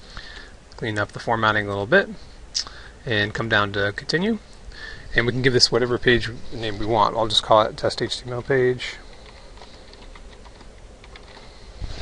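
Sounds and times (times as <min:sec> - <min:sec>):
keyboard typing: 0:09.1 - 0:11.5.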